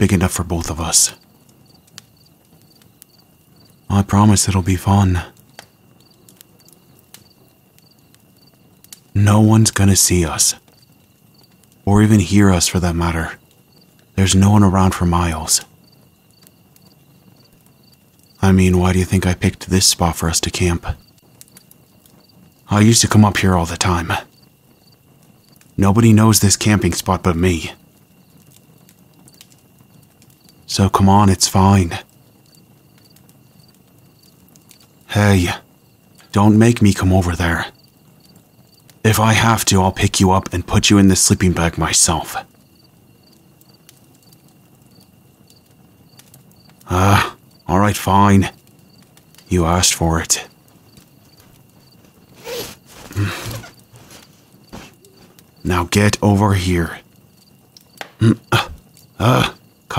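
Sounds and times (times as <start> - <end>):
crickets trilling: 0.0 - 59.9
insects high steady tone: 0.0 - 59.9
faint clicks: 1.2 - 3.8, 5.2 - 9.1.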